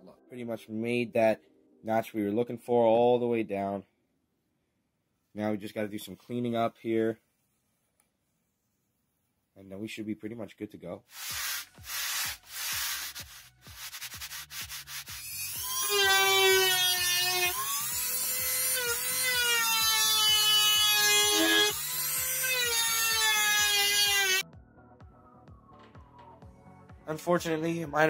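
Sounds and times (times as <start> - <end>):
sanding wood: 11.1 - 16.8
rotary tool grinding wood: 11.2 - 24.4.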